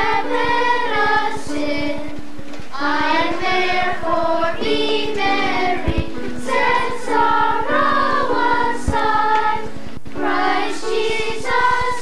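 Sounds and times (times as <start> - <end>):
children's choir singing: 0.0 - 12.0.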